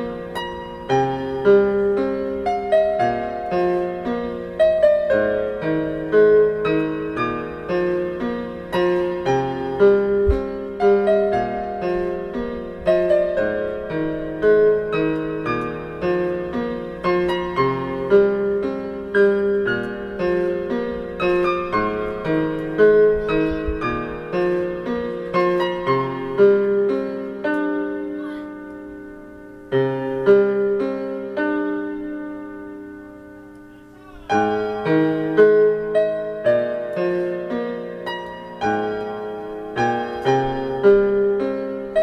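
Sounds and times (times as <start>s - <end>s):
calm piano music: 0.0s - 42.0s.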